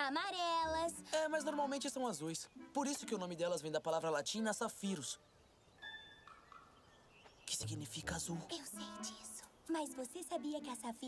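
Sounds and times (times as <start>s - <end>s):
faint whistled bird calls: 5.0s - 7.6s.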